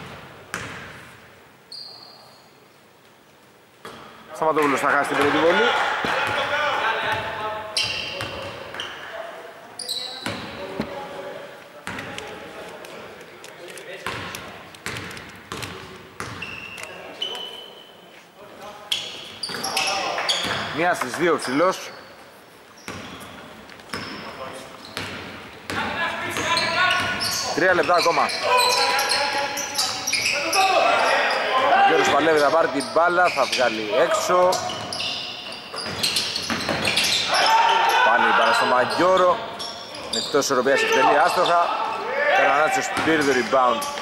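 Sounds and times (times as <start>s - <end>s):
high shoe squeaks: 1.7s - 2.6s, 7.7s - 9.0s, 9.8s - 10.9s, 16.2s - 18.3s, 18.9s - 20.8s, 22.8s - 25.2s, 26.3s - 31.5s, 32.2s - 42.0s.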